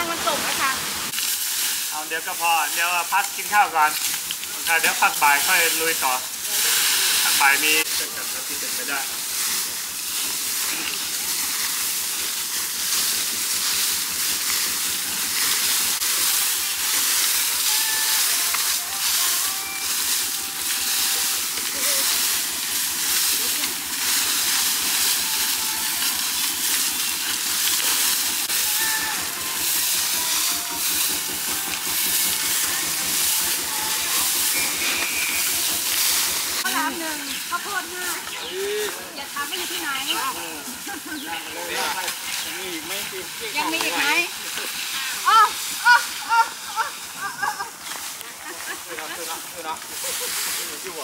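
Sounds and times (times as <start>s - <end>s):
rakes scraping dry leaves: 0.0s - 51.0s.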